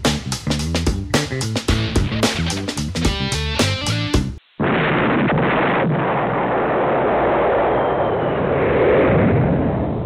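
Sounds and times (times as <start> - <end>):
rumbling explosion-like blast: 4.6 - 10.0.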